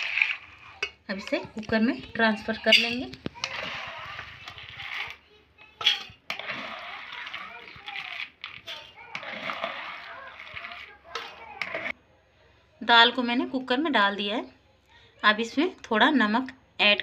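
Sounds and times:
wet beans pouring into pot: 0.0 - 0.7, 6.3 - 11.0
ladle clinking: 2.3 - 5.0.

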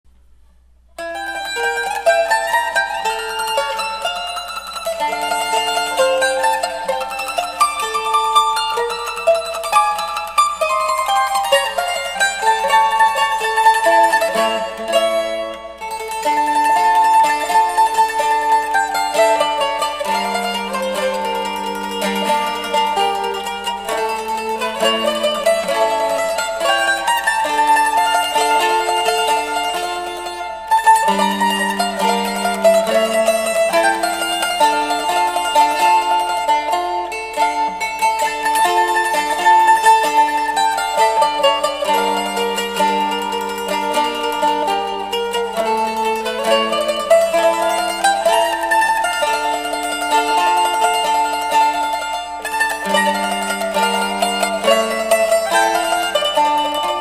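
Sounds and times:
mandolin tremolo melody: 0.9 - 57.0.

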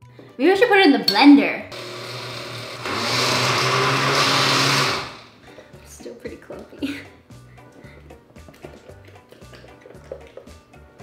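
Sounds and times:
countertop blender running: 1.7 - 5.4.

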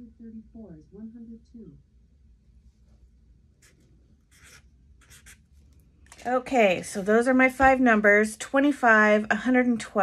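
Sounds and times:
marker scratching on cardstock: 3.6 - 5.5.

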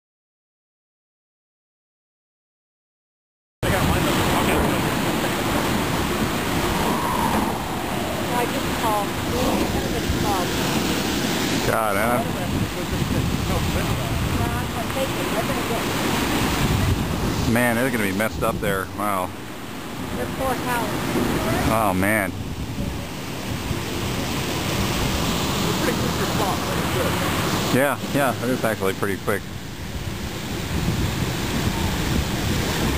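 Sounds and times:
water rushing from hydrant: 3.6 - 32.9.

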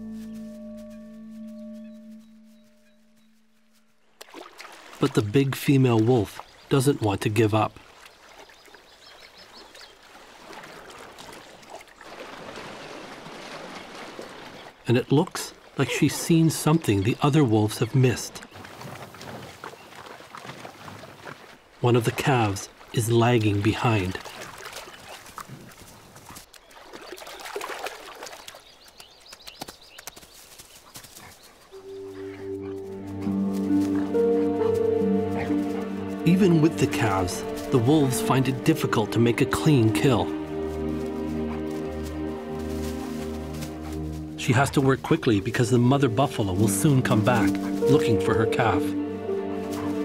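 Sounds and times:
music with long held notes: 0.0 - 4.0, 31.8 - 50.0
rustling through grass: 0.0 - 5.0, 29.6 - 50.0
animals splashing through water: 4.1 - 48.8.

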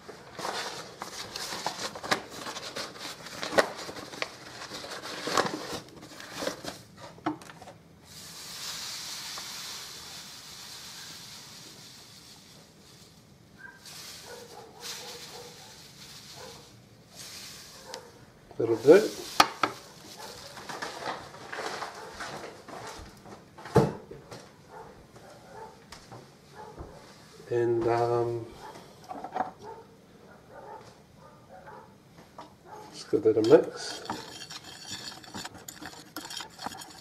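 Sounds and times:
sugar granules pouring: 8.1 - 17.9, 18.6 - 19.9
faint rustles: 11.8 - 23.2.

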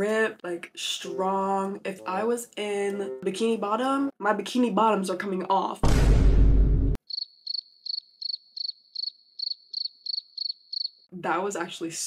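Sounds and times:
deep boom: 5.8 - 7.0
crickets chirping: 7.0 - 11.1.

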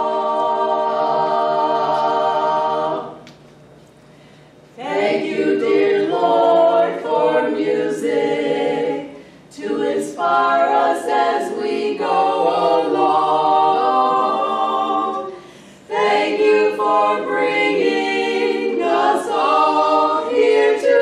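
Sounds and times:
women singing a cappella: 0.0 - 3.2, 4.8 - 21.0.

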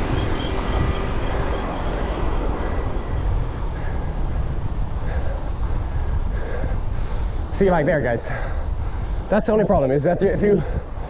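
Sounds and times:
bicycle tyre and road noise: 0.0 - 11.0
wind buffeting microphone: 0.0 - 11.0.

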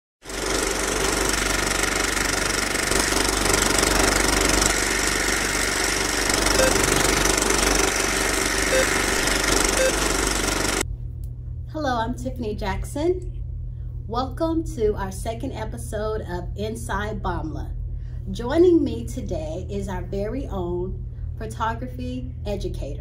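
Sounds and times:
film projector rattle and hiss: 0.2 - 10.8.

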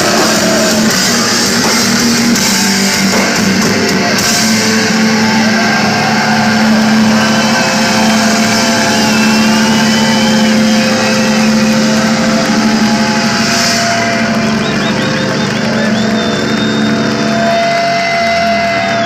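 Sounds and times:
electric guitar feedback squeal: 0.0 - 19.0.

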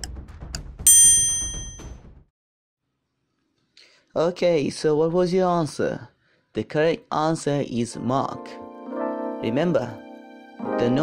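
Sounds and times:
bell-like timer ding: 0.9 - 1.9.

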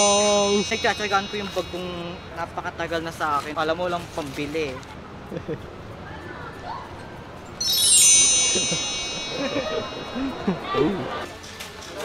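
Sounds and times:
chime of high ringing tones: 0.0 - 2.6, 7.6 - 10.8.

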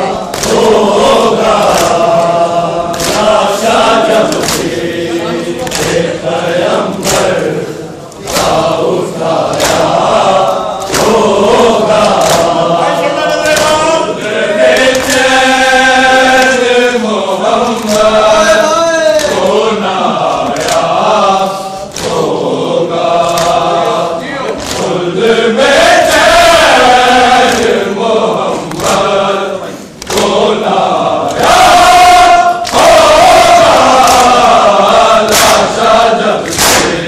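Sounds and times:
crowd of men chanting: 0.0 - 37.0
chest-beating slaps: 0.3 - 4.8, 5.6 - 6.1, 6.7 - 7.5, 8.1 - 12.8, 13.4 - 14.0, 14.6 - 15.4, 17.6 - 18.3, 20.4 - 21.1, 21.8 - 22.5, 23.1 - 23.8, 24.5 - 25.0, 27.4 - 27.8, 30.0 - 30.5, 31.3 - 37.0.

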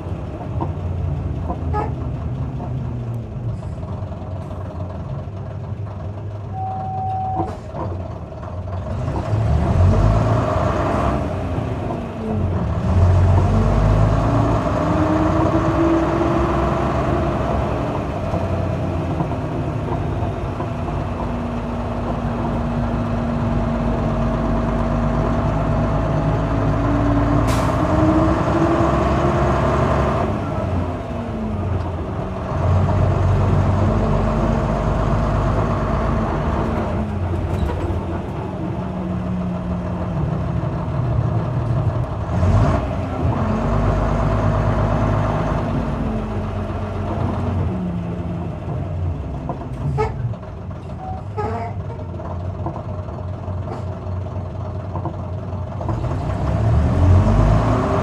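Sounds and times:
bus diesel engine accelerating: 0.0 - 58.0
short beep: 6.5 - 7.5.

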